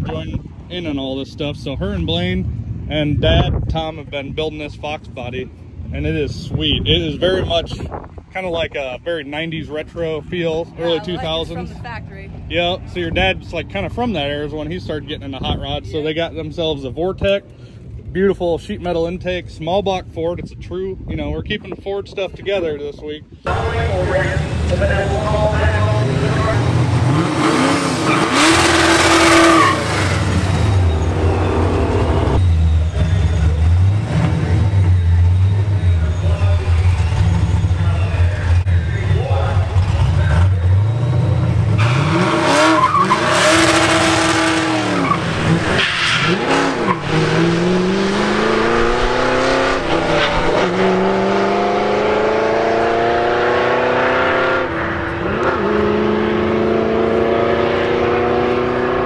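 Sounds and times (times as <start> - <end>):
car engine revving: 23.5 - 59.0
tyre squeal: 27.9 - 38.6, 40.8 - 47.3.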